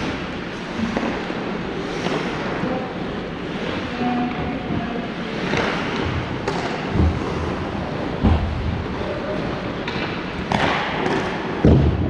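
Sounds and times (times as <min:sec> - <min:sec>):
steady rink hiss: 0:00.0 - 0:08.2
thuds on hockey rink boards: 0:05.5 - 0:08.8, 0:09.8 - 0:12.0.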